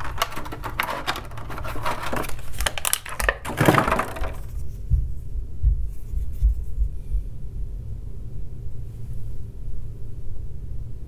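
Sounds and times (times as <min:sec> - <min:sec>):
plastic tray crinkling and clicking: 0:00.0 - 0:04.6.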